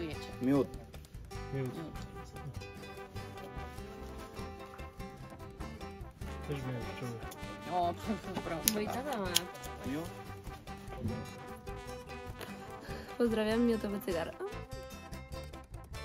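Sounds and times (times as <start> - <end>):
background music sustained notes: 0.0 - 16.0.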